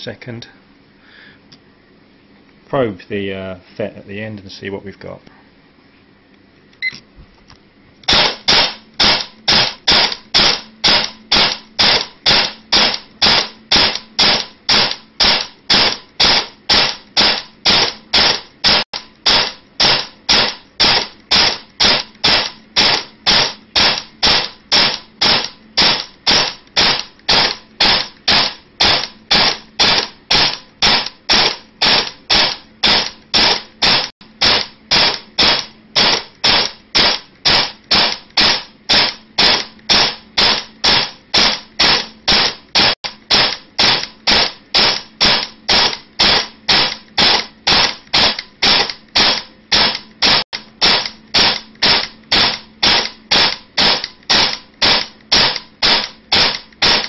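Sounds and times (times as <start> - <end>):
airsoft gun firing single shots: 8.1 - 57.0.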